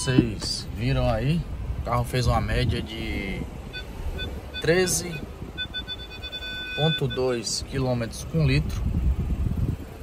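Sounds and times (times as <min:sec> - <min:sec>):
parking sensor beeps: 0:00.0 - 0:00.6, 0:03.6 - 0:08.0
engine and cabin rumble: 0:00.0 - 0:10.0
steady warning tone: 0:03.7 - 0:07.9.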